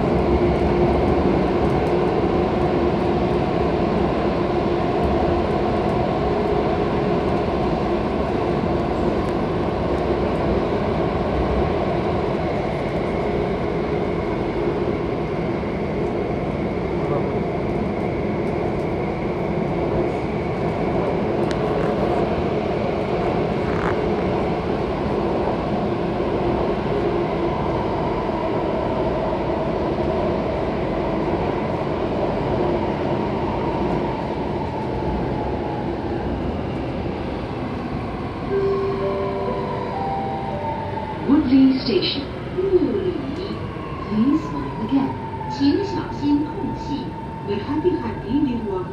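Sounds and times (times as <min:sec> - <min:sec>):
wheels rumbling on rail: 0:00.0 - 0:48.9.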